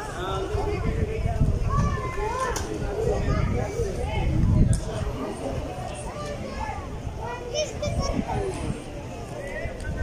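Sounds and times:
chatter of people: 0:00.0 - 0:10.0.

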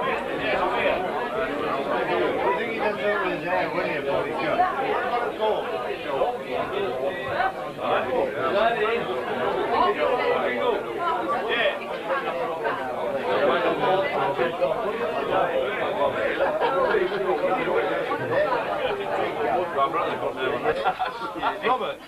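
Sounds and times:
chatter of many people: 0:00.0 - 0:22.0.

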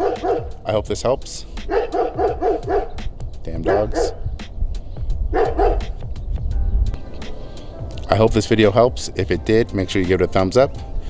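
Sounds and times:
dog barking: 0:00.0 - 0:00.6, 0:01.6 - 0:04.2, 0:05.3 - 0:06.0.

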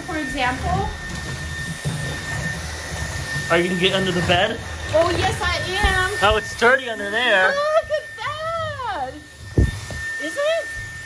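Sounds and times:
stick vacuum running on wood floor: 0:00.0 - 0:11.0.

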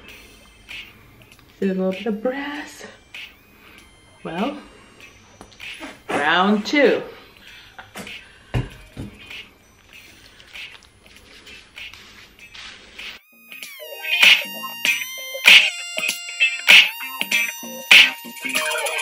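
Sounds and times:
background music with bright hits: 0:00.0 - 0:06.5, 0:13.0 - 0:19.0.

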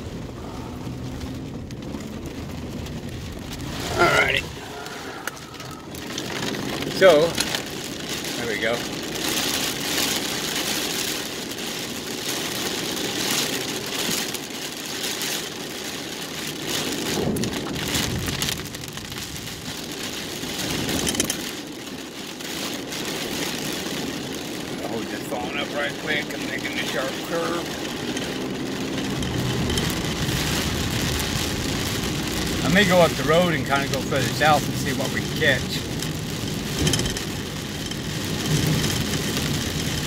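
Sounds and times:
rain on windshield and roof: 0:00.0 - 0:40.0
tyre and engine noise: 0:00.0 - 0:40.0
windshield wipers sweeping: 0:00.0 - 0:40.0.

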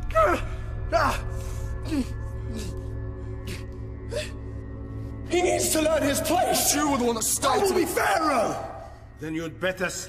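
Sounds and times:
dramatic film score drone: 0:00.0 - 0:10.0.

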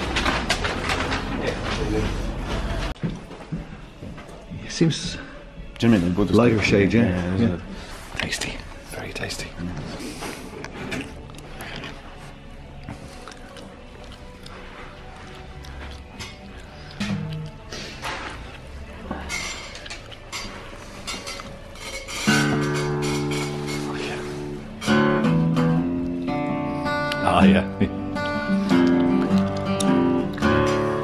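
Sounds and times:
acoustic guitar strummed: 0:21.8 - 0:31.0.

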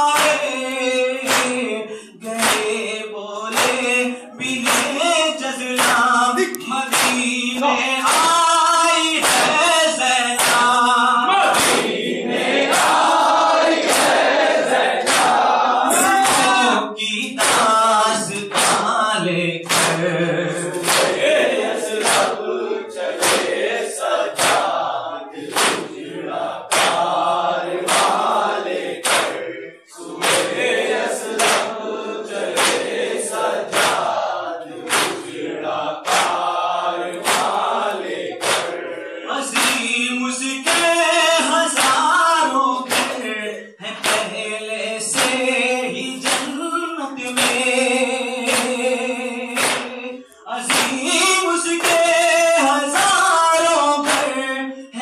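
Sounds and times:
men chanting in unison: 0:00.0 - 0:55.0.

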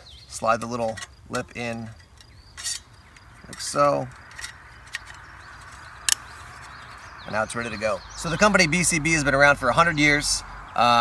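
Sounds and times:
low outdoor hiss: 0:00.0 - 0:11.0.

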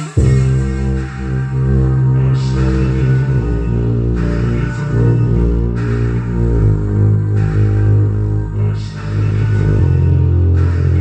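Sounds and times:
deep sustained bass note: 0:00.2 - 0:11.0.

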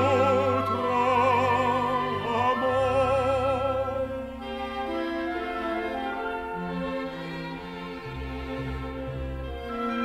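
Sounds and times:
orchestral strings playing: 0:00.0 - 0:10.0.

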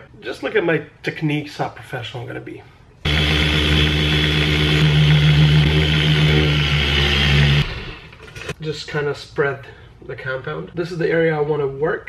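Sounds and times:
polisher motor hum: 0:03.1 - 0:08.2.

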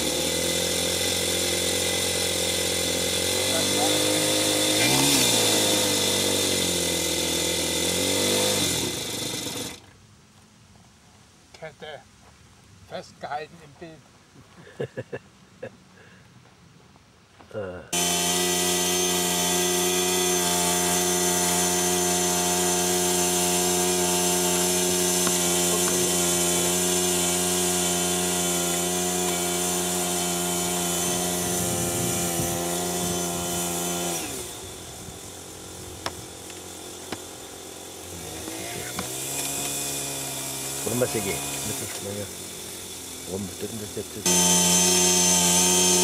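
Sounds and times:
small model engine running: 0:00.0 - 0:09.8, 0:17.9 - 0:46.0.

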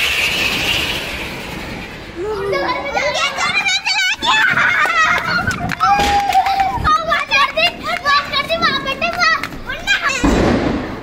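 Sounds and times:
children shouting and chattering: 0:02.0 - 0:10.6.

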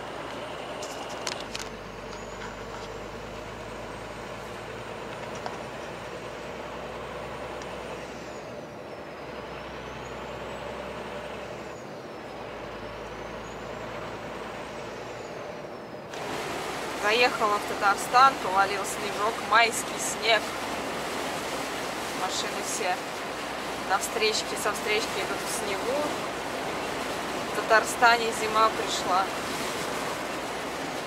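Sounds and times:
truck engine and road noise: 0:00.0 - 0:31.0.

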